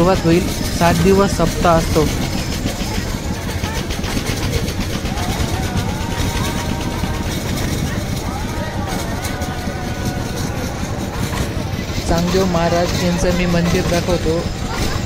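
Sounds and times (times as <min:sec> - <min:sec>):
steady low rumble: 0:00.0 - 0:06.1
distant crowd voices: 0:00.0 - 0:15.0.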